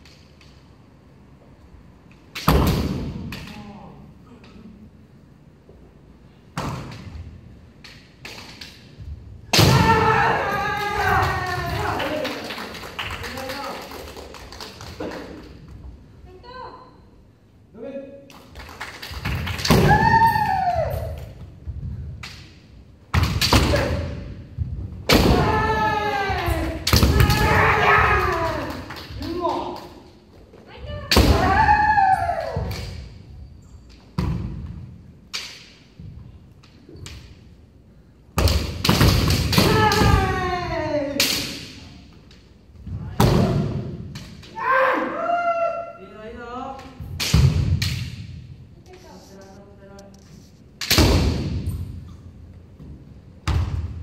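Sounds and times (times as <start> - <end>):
bamboo swords clacking: 6.7 - 10.0, 35.2 - 37.5
person shouting: 25.3 - 29.5
sharp crack: 50.8 - 51.6.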